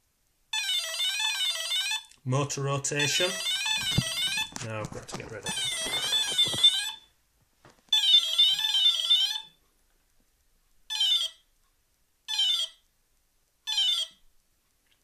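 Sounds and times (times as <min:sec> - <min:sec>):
warbling electronic tones: 0:03.0 - 0:04.6.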